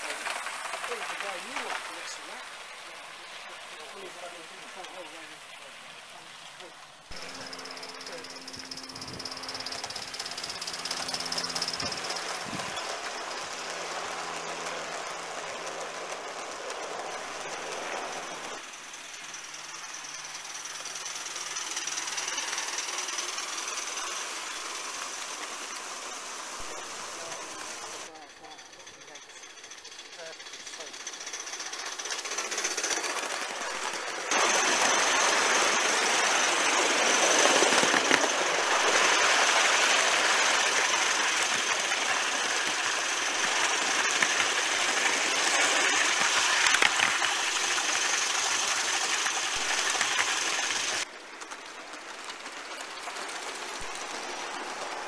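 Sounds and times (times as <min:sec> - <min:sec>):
model steam train running on track: 0:00.0 - 0:55.0.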